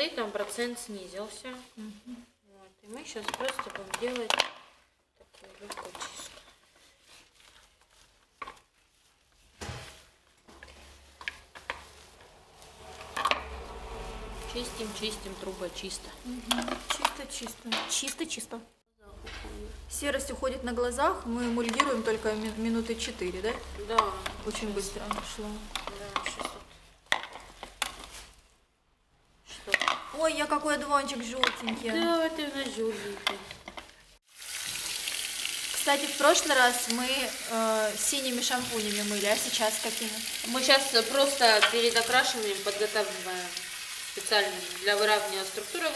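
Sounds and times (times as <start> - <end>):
wet squishing and rubbing of hair: 5.2 - 17.7, 20.2 - 28.7.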